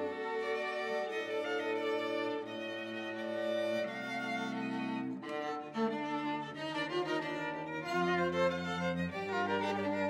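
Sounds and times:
string quartet sustained chords: 0.0 - 10.0.

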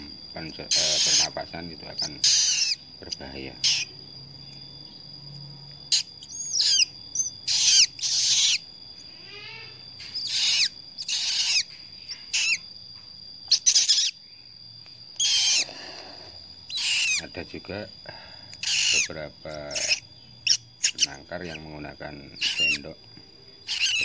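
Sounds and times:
bird chick begging calls: 0.7 - 1.4, 2.0 - 2.8, 3.6 - 3.9, 5.9 - 8.6, 9.3 - 12.6, 13.5 - 14.2, 15.2 - 15.7, 16.7 - 17.2, 18.6 - 21.7, 22.4 - 22.9, 23.6 - 24.0.

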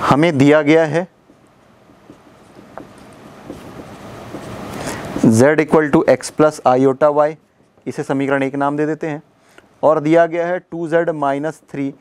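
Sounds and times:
steady hiss: 0.0 - 12.0
marker scratching on whiteboard: 1.3 - 5.4.

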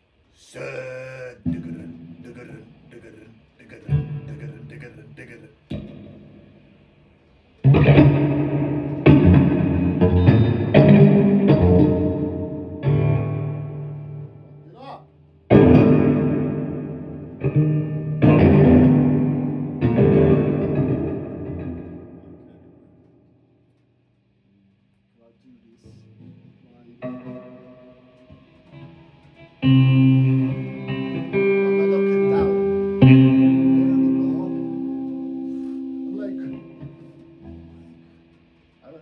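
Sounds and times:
loud electric guitar chords: 0.5 - 14.7, 15.4 - 23.3, 26.0 - 38.8
electric guitar picked notes: 0.6 - 14.8, 15.4 - 23.3, 25.9 - 39.0.

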